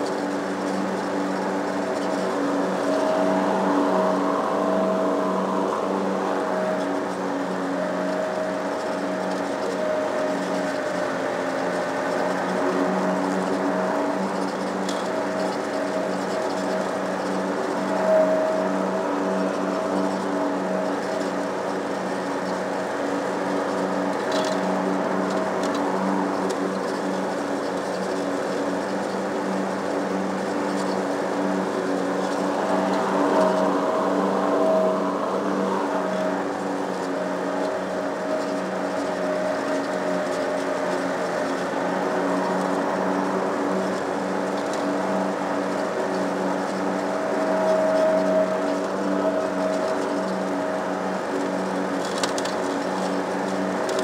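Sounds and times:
lawn mower engine cutting grass: 0.0 - 54.0.

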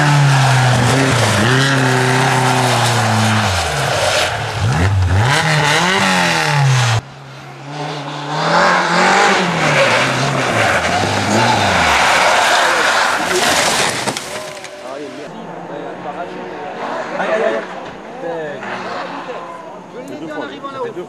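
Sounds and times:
rally car engine revving: 0.0 - 14.6.

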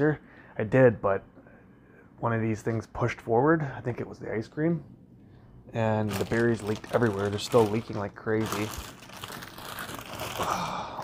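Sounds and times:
plastic bag crinkling: 5.8 - 10.8.

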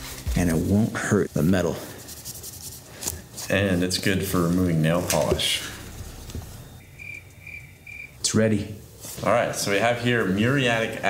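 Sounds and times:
cricket chirping: 5.7 - 8.2.

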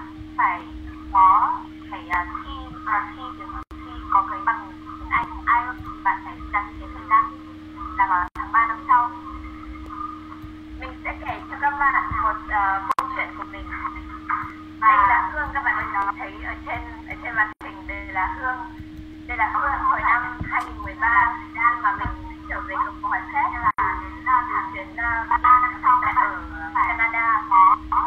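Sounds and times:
person talking: 0.0 - 7.4, 8.0 - 9.4, 10.8 - 28.0
low hum: 0.0 - 28.0.

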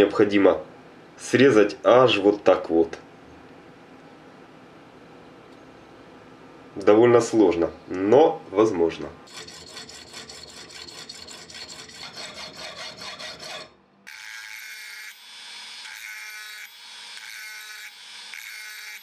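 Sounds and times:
needle file rasping on brass: 9.3 - 13.7.

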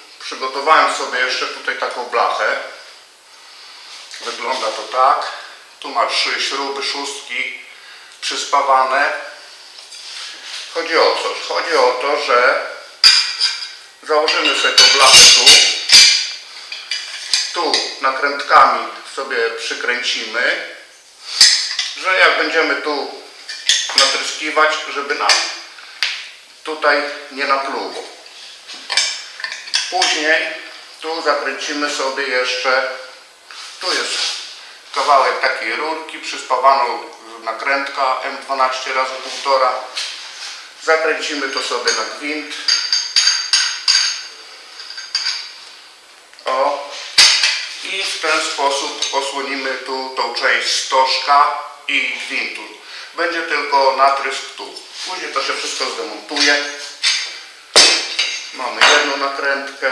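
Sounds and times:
metal nut clinking and scraping: 13.0 - 17.6, 41.9 - 45.6, 56.4 - 58.6.

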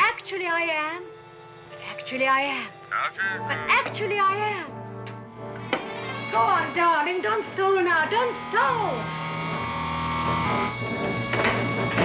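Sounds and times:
background score music: 0.0 - 12.0.

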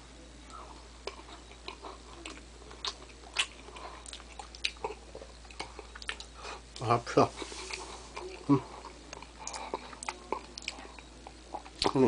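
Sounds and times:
chewing with mouth clicks: 0.5 - 12.0.

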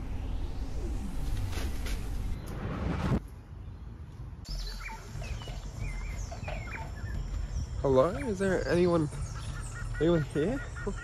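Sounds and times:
birds chirping and calling: 4.5 - 11.0.

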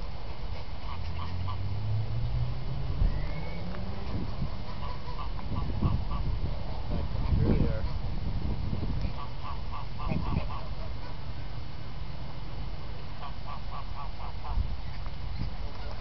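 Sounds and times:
geese honking: 0.8 - 1.6, 4.6 - 6.3, 9.1 - 11.2, 13.2 - 14.6.

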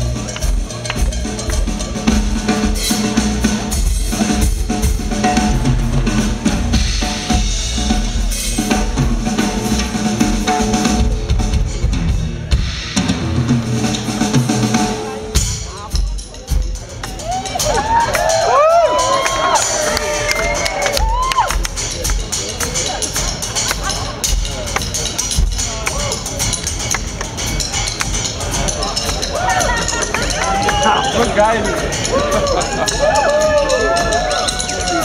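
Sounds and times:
bass drum: 0.0 - 35.0
drum kit solo: 0.0 - 35.0.

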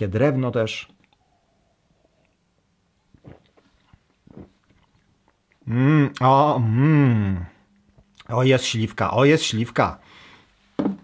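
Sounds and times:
faint mouth sounds: 0.9 - 8.3
person swallowing: 3.1 - 8.2.

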